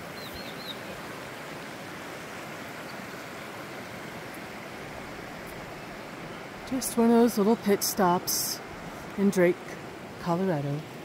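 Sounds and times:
creek running over rocks: 0.0 - 11.0.

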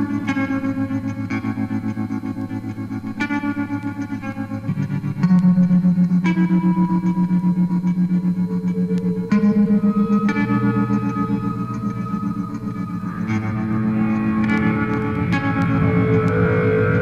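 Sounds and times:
distorted electric guitar chords: 0.0 - 17.0.

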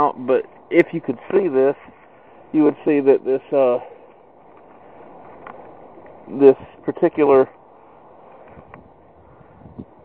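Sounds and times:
outdoor background hiss: 0.0 - 10.0.

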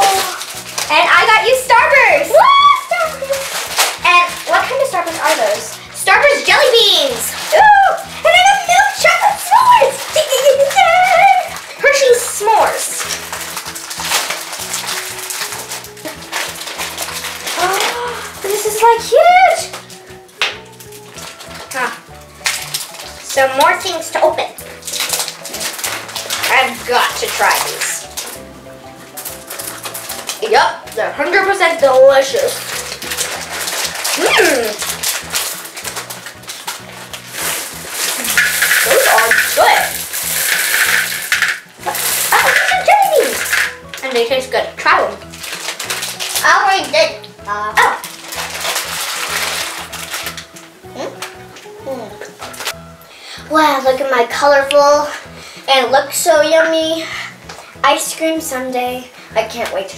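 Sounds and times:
sweets poured into glass bowls: 0.0 - 53.1
sweet packets rustling: 0.0 - 59.9.

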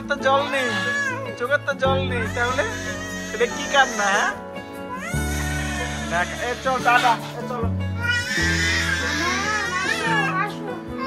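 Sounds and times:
background music with bass line: 0.0 - 11.0
toddler crying: 0.2 - 1.5, 2.1 - 7.4, 8.0 - 11.0.

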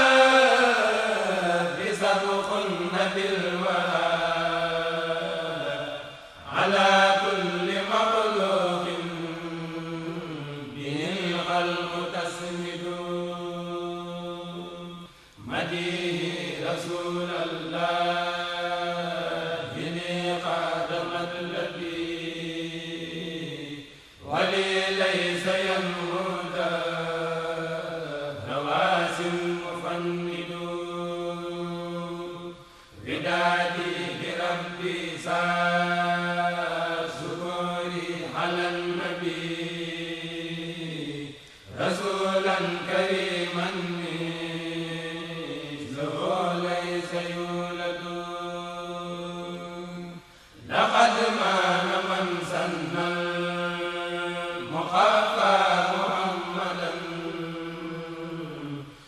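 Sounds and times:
group of men chanting: 0.0 - 58.9.

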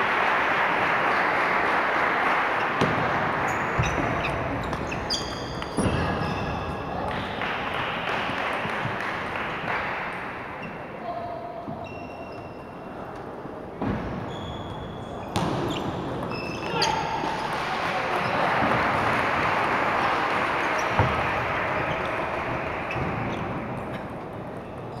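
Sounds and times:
crowd noise in large hall: 0.0 - 25.0
shoe squeaks: 3.4 - 7.0, 10.6 - 10.9, 11.7 - 13.0, 14.0 - 17.2, 22.9 - 25.0.

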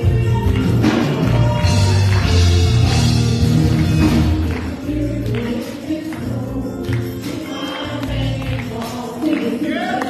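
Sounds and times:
instrumental backing with percussion: 0.0 - 10.0
women singing worship song: 4.4 - 10.0.

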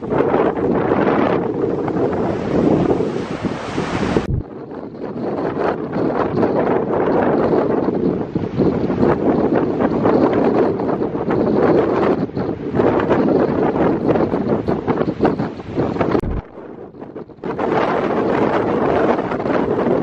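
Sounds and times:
surf breaking: 0.0 - 4.5
wind buffeting microphone: 0.0 - 20.0.

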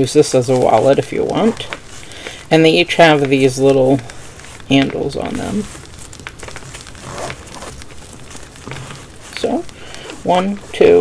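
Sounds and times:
fabric pouch rustling: 0.0 - 11.0
zipper pulled open: 7.0 - 7.8.

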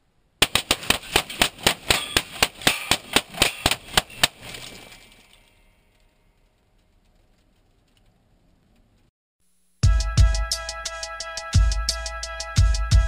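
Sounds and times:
rapid rifle shots: 0.4 - 4.6.

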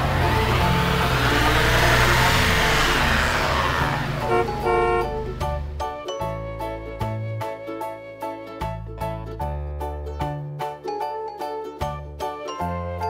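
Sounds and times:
car engine sound effect: 0.0 - 5.8
background music with bass: 0.0 - 13.0.

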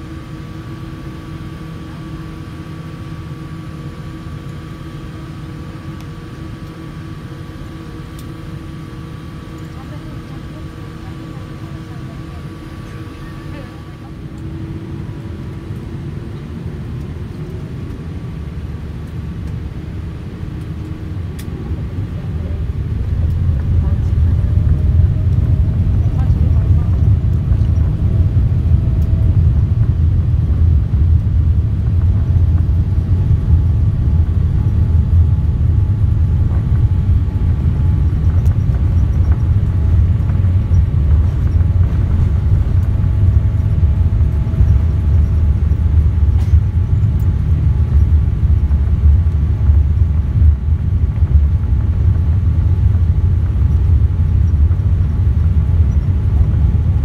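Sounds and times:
jet engines spooling up and roaring: 6.4 - 57.0.

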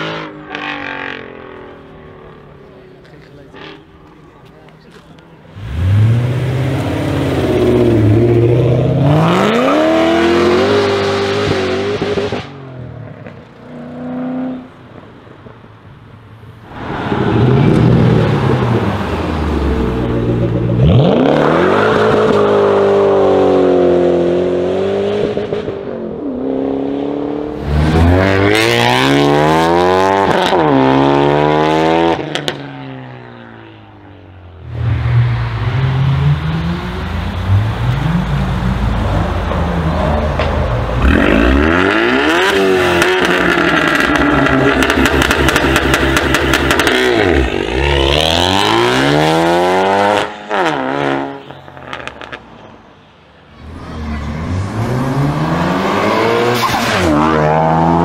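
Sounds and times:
car engines accelerating hard: 0.0 - 14.9, 16.6 - 52.4, 53.4 - 58.0.

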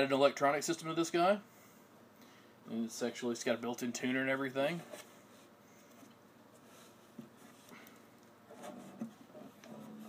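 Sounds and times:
rubbing against guitar body: 8.5 - 10.0.

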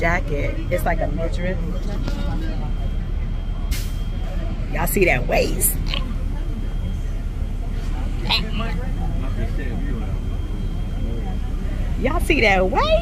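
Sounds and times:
faint voices: 0.0 - 13.0
moving bus rumble: 0.0 - 13.0.

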